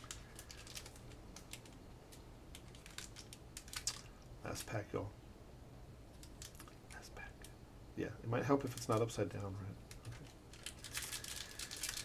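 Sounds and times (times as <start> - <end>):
foil pack crinkling: 0.0 - 1.8, 2.5 - 4.1, 9.9 - 12.0.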